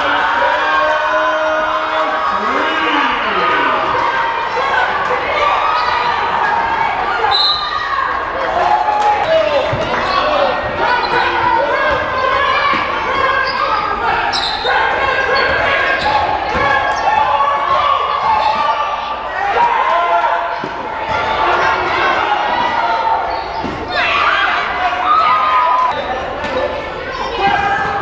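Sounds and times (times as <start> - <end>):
people shouting and calling: 0.0 - 28.0.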